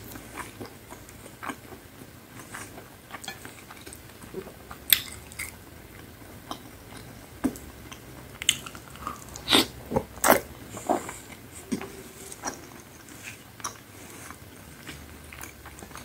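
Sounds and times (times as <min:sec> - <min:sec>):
chewing crunchy pizza: 0:00.0 - 0:16.0
wet mouth sounds: 0:08.4 - 0:12.6.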